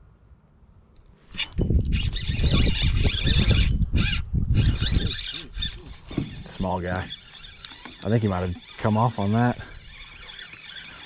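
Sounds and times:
fishing reel gears whirring: 0:01.4 - 0:11.0.

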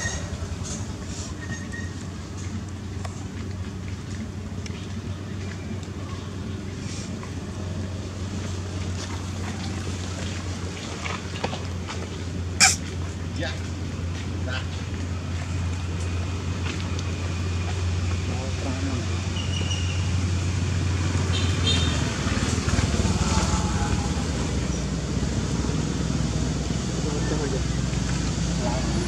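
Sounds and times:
low engine hum: 0:00.0 - 0:29.0
distant voices: 0:22.0 - 0:29.0.

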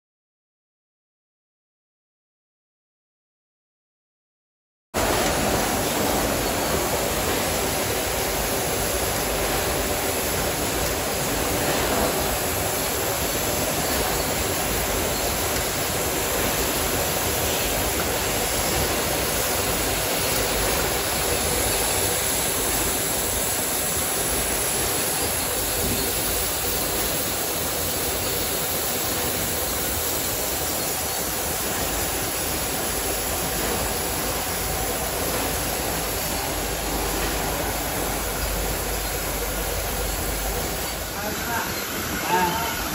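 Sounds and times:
packaging line machine noise: 0:05.0 - 0:42.9.

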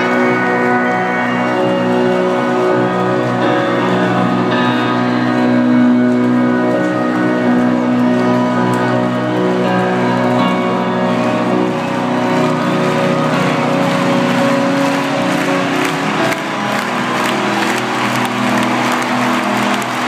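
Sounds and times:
crowd cheering and applause: 0:00.0 - 0:20.0
live rock band chords: 0:00.0 - 0:20.0.

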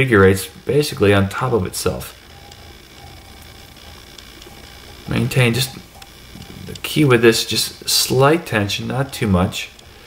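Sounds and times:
room hiss: 0:00.0 - 0:10.0
faint small ticks: 0:02.0 - 0:10.0.

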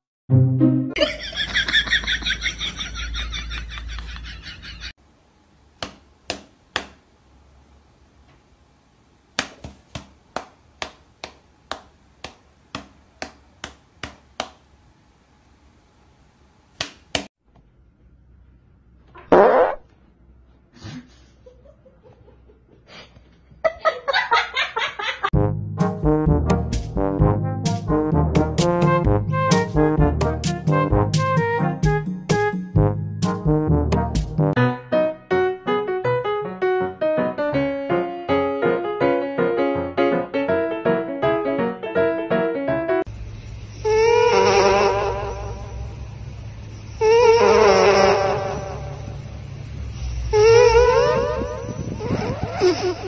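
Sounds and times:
person farting: 0:19.2 - 0:19.9
electrical hum: 0:43.1 - 0:53.0
dog snoring whistle: 0:49.9 - 0:53.0.

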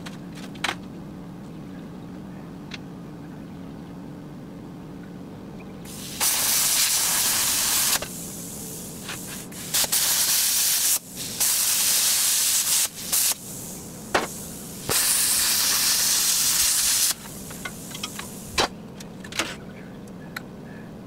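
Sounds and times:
cutting torch hissing bursts: 0:05.8 - 0:18.7
steady torch hiss: 0:05.8 - 0:18.7.

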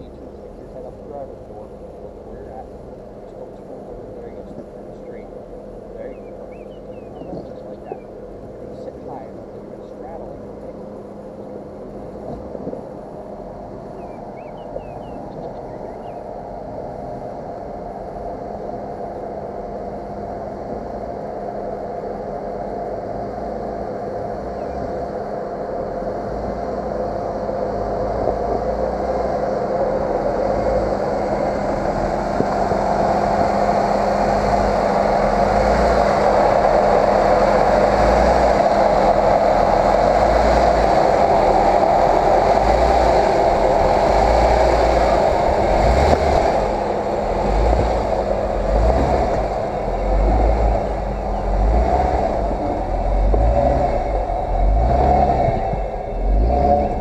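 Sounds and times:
off-road vehicle engine rumbling: 0:00.0 - 0:57.0.

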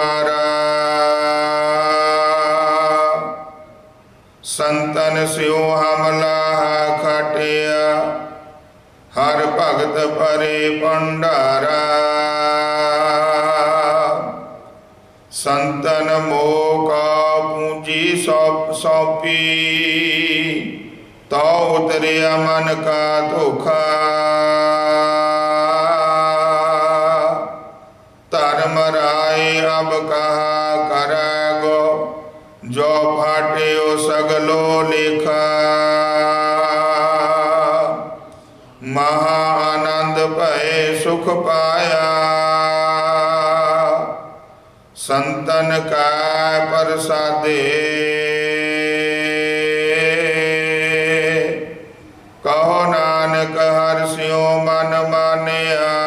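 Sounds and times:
man chanting: 0:00.0 - 0:56.0.

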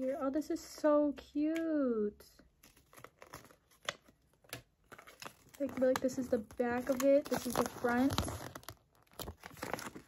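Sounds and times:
paper crinkling: 0:02.6 - 0:10.0.

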